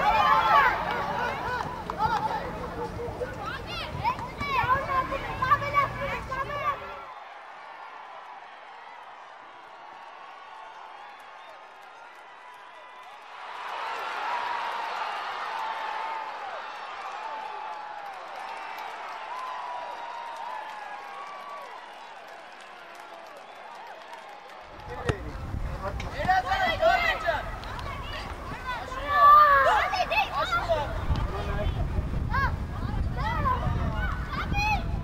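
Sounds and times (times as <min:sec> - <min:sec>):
boys shouting and cheering: 0:00.0 - 0:11.0, 0:24.6 - 0:35.0.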